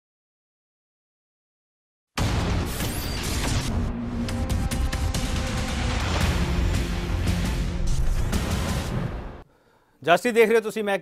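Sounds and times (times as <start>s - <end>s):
television intro theme music: 2.2s - 9.4s.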